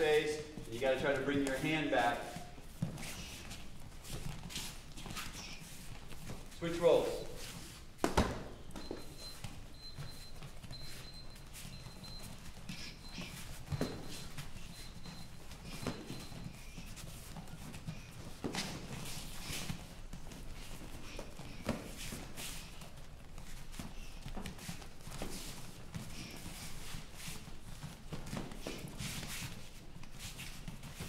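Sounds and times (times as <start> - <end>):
bare feet shuffling on mats: 0.0 - 31.0
boxing gloves thudding: 7.9 - 22.3.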